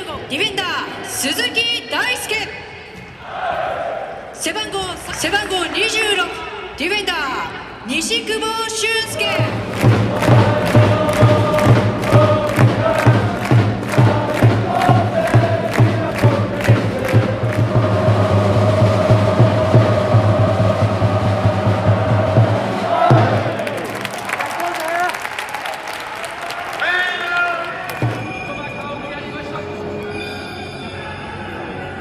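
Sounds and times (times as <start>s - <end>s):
crowd noise: 0.0s - 32.0s
football supporters chanting: 3.2s - 4.2s, 9.1s - 24.0s
bass drum beating: 9.2s - 23.6s.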